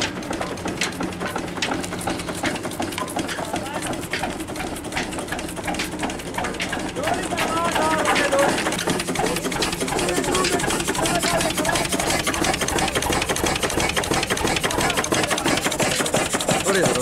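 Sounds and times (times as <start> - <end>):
diesel engine clattering: 0.0 - 17.0.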